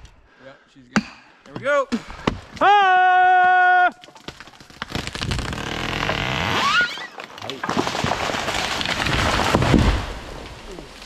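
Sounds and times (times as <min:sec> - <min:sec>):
tree cracking and crashing: 0:02.4 - 0:11.0.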